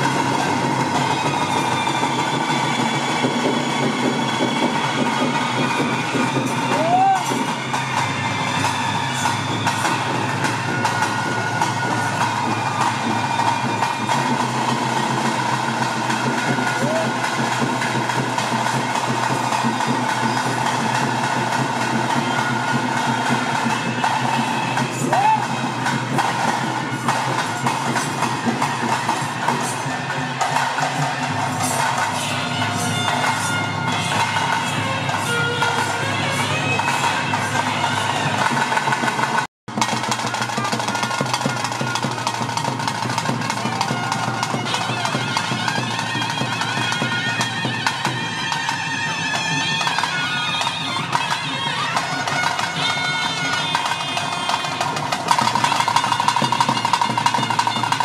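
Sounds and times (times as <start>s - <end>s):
drums and cymbals: 0.0s - 58.0s
held high tone: 0.0s - 58.0s
voices: 0.0s - 58.0s.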